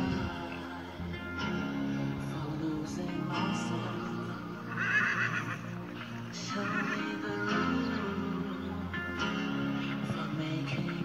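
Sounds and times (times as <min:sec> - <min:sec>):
pop music: 0:00.0 - 0:11.0
horse whinnying: 0:04.7 - 0:06.0.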